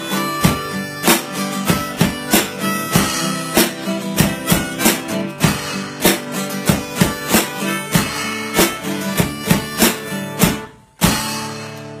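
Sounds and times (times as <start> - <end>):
harmonica: 0.0 - 11.5
acoustic guitar strumming: 0.0 - 12.0
drum kit with cymbals: 0.0 - 12.0.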